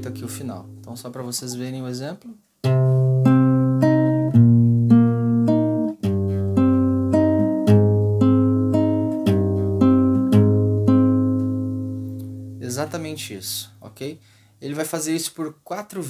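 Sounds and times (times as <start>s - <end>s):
fingerpicked classical guitar: 0.0s - 1.4s, 2.6s - 13.4s.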